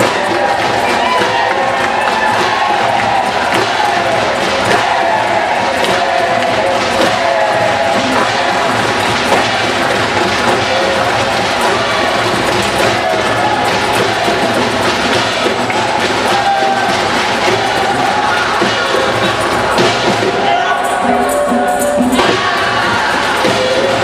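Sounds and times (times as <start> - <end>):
percussion ensemble drumming: 0.0 - 24.0.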